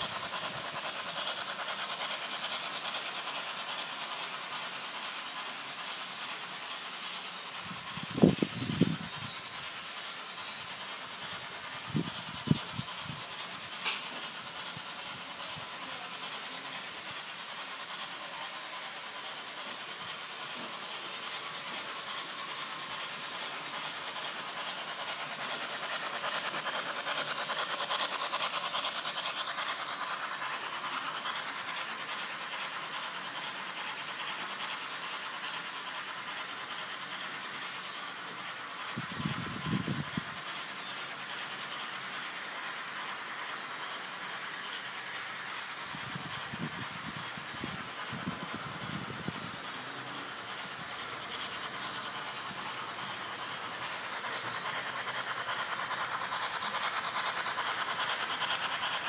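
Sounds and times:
model train motors whirring: 0.0 - 59.0
rattle of train wheels: 0.0 - 59.0.

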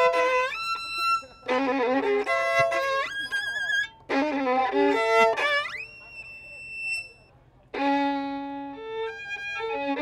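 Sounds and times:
low bowed violin note: 0.0 - 10.0
violin high note with slide: 0.0 - 10.0.

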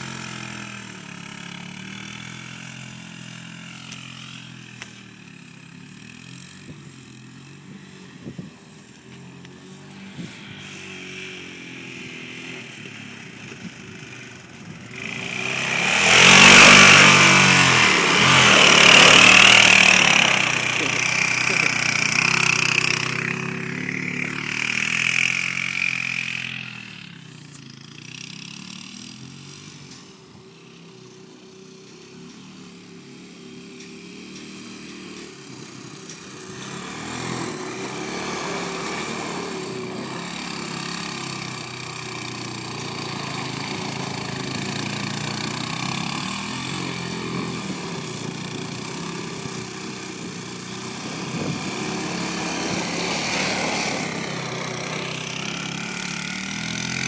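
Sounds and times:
atv engine revving: 0.0 - 57.0.

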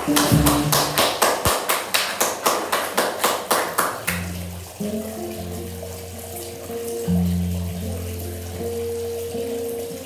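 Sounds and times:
upright bass notes: 0.0 - 1.0.

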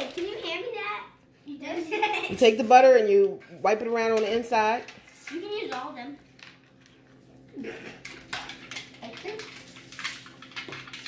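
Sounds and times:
plastic bags crinkling: 8.0 - 11.0.

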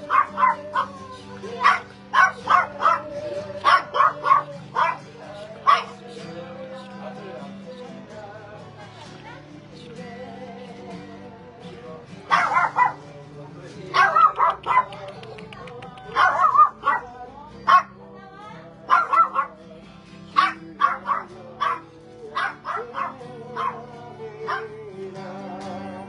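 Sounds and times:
dog barking: 0.0 - 6.0, 12.3 - 13.1, 13.9 - 15.1, 16.0 - 18.0, 18.9 - 19.6, 20.3 - 23.9, 24.5 - 24.7
background music: 0.0 - 26.0.

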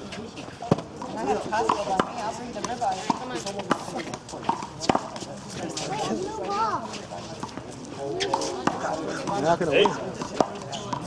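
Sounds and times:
men talking: 7.8 - 10.3.

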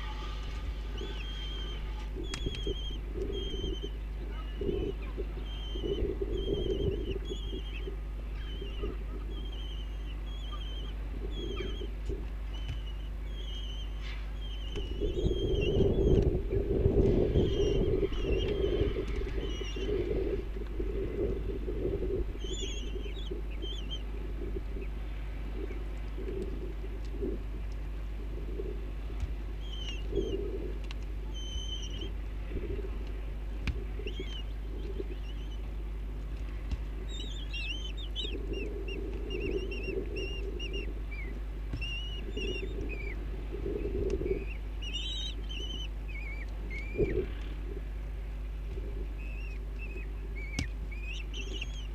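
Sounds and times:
kestrels calling: 0.0 - 51.9
low rumbling: 0.0 - 51.9
steady low hum: 0.0 - 51.9.

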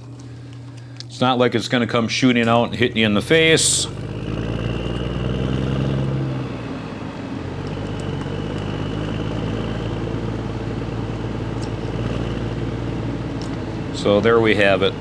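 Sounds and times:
shop machinery hum: 0.0 - 15.0.

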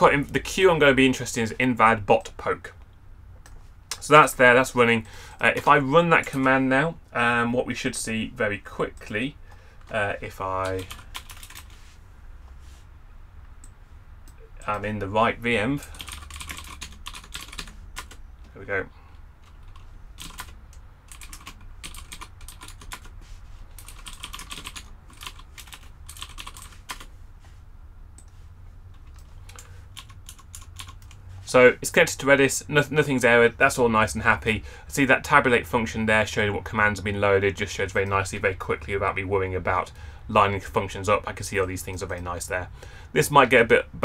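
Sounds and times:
low steady hum: 0.0 - 44.0
computer keyboard typing: 10.6 - 11.7, 15.9 - 18.2, 19.4 - 23.1, 23.8 - 27.1, 29.0 - 31.2.

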